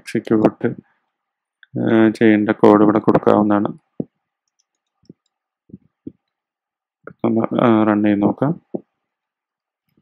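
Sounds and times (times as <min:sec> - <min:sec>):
man speaking: 0:00.0 - 0:00.8, 0:01.6 - 0:04.1, 0:07.1 - 0:08.8.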